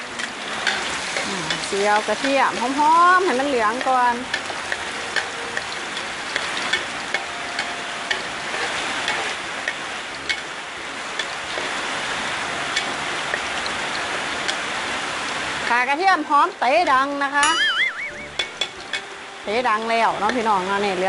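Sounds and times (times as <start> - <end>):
garlic sizzling in oil: 0.0 - 21.0
metal ladle scraping pan: 18.2 - 19.2.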